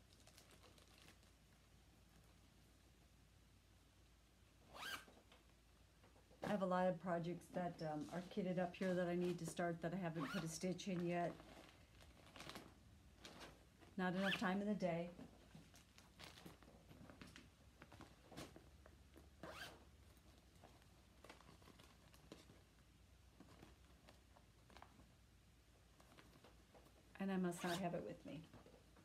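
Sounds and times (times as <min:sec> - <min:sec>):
plastic bag rustling and unzipping: 0:00.0 - 0:01.6, 0:07.3 - 0:25.2
zipper pulled quickly: 0:04.7 - 0:05.1, 0:10.2 - 0:10.5, 0:14.2 - 0:14.4, 0:27.6 - 0:27.8.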